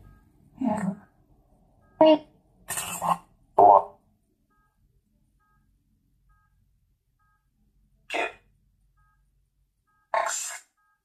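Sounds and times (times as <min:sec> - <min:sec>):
chopped voice fragments: 0:02.0 - 0:04.0, 0:08.1 - 0:08.4, 0:10.2 - 0:10.6.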